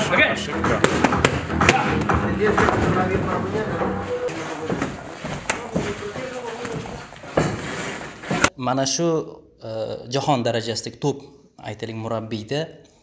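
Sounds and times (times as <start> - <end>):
gloves smacking mitts: 0.7 - 3.4, 4.2 - 8.5.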